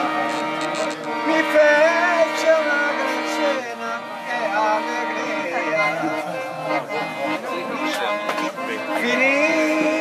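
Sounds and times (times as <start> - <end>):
accordion playing chords: 0.0 - 10.0.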